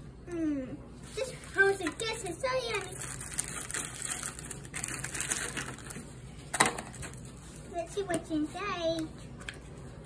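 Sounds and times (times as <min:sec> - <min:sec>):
candy wrappers and foil crinkling: 0:01.1 - 0:09.0.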